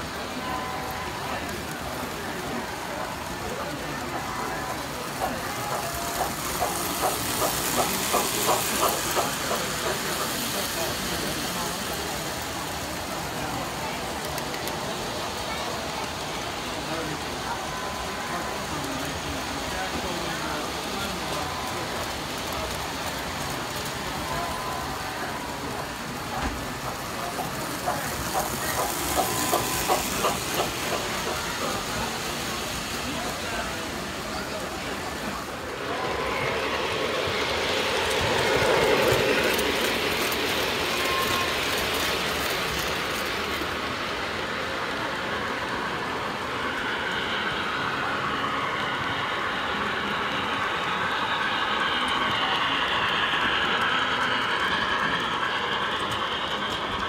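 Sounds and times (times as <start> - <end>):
crowd chatter: 0.0 - 57.0
model train wheels rolling: 0.0 - 57.0
regular track clicks: 0.0 - 57.0.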